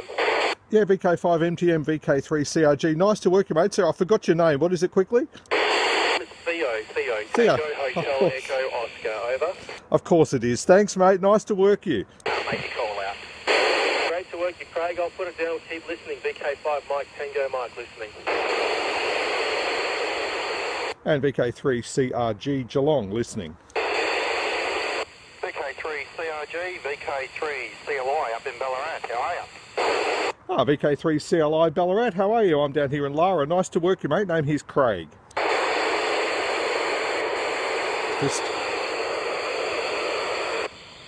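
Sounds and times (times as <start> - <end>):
radio static hiss: 0.0 - 0.7, 5.5 - 9.9, 12.2 - 21.0, 23.8 - 30.6, 35.4 - 41.0.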